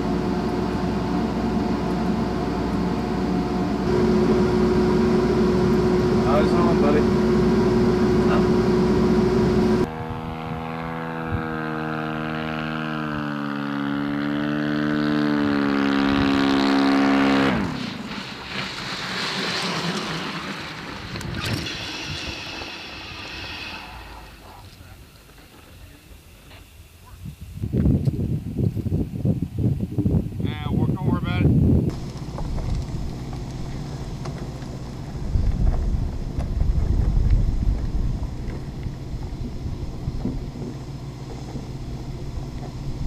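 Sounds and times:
steady equipment hum: 0.0 - 10.7, 30.5 - 43.0
aircraft engine droning: 0.0 - 26.6, 31.7 - 43.0.

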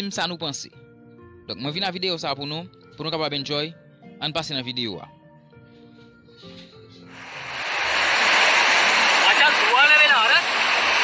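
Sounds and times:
surf rushing on beach: 7.2 - 11.0.

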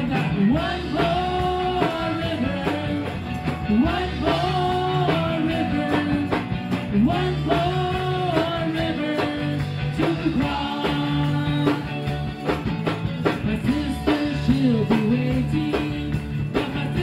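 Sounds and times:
electric keyboard: 0.0 - 17.0
regular beat: 0.0 - 17.0
women singing gospel: 0.2 - 11.8.

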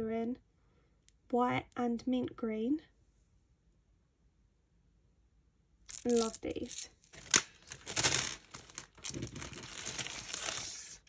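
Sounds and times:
small resin hearts clattering: 5.9 - 10.5.

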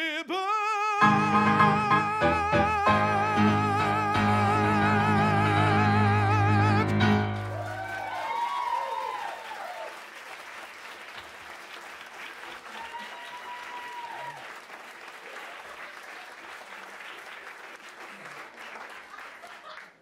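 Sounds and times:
crowd whooping: 7.1 - 10.0, 12.7 - 14.5
audience applauding: 7.1 - 20.0.

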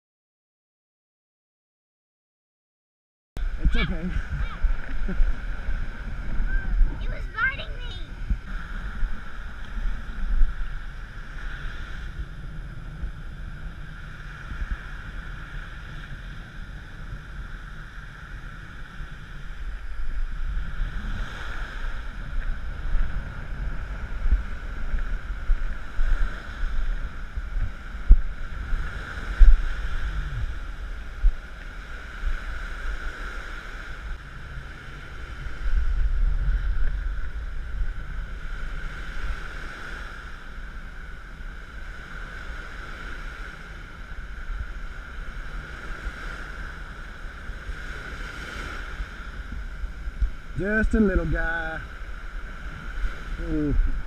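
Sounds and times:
surf breaking on beach: 3.4 - 54.0
wind buffeting microphone: 3.4 - 54.0.

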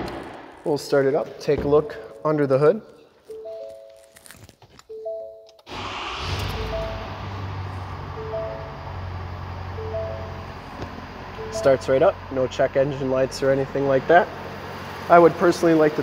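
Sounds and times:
two-note dashboard warning chime: 3.3 - 4.1, 4.9 - 5.6, 6.5 - 12.2
diesel engine starting and idling: 5.6 - 16.0.

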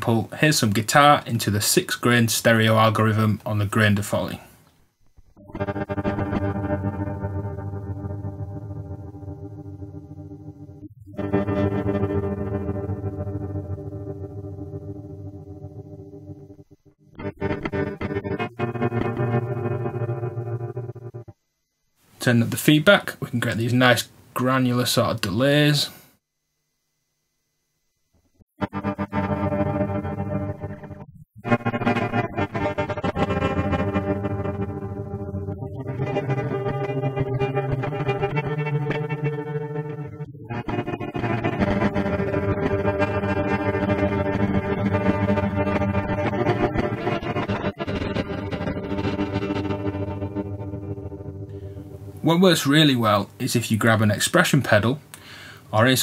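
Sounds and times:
granular electric guitar: 5.0 - 21.4, 28.6 - 53.4.

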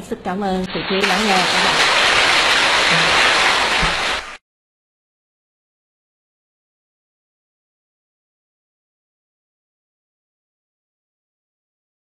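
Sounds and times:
audience applauding: 1.0 - 4.4.

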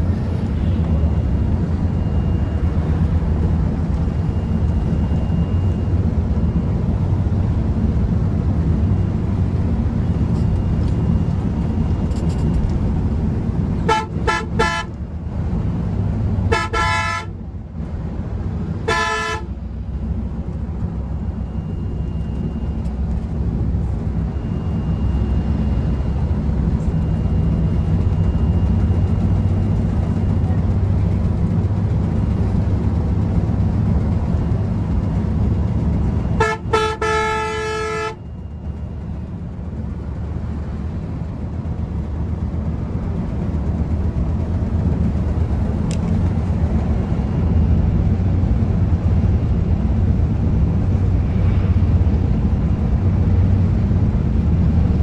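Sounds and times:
coach engine and road noise: 0.0 - 55.0
vehicle horn tooting: 13.8 - 15.0, 16.5 - 17.4, 18.9 - 19.6, 36.4 - 38.3.

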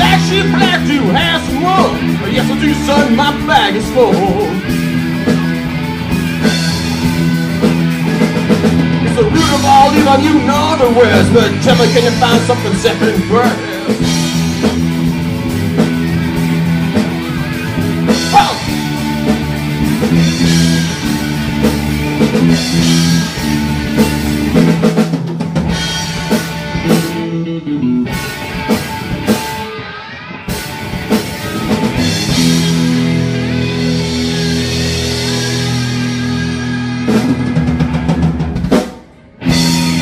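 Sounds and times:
live rock band playing: 0.0 - 40.0.

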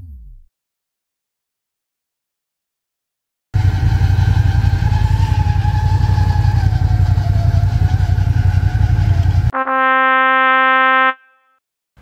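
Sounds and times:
snowmobile engine running: 3.6 - 9.5
steady horn-like tone: 9.5 - 11.6.

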